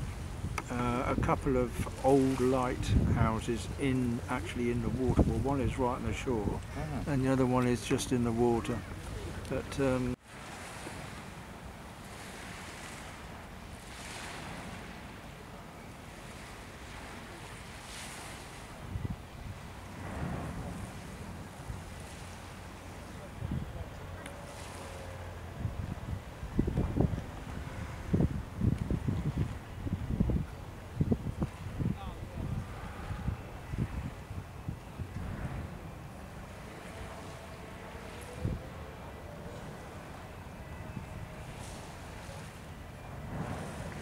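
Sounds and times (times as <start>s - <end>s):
wind buffeting microphone: 0.0s - 15.2s, 16.3s - 44.0s
small waves washing on beach: 0.0s - 44.0s
wind: 0.0s - 44.0s.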